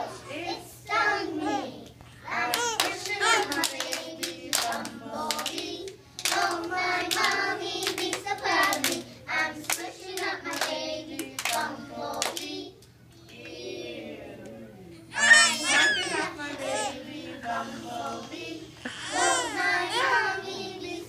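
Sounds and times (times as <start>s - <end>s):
hands clapping: 1.8s - 12.5s
children singing: 15.2s - 21.0s.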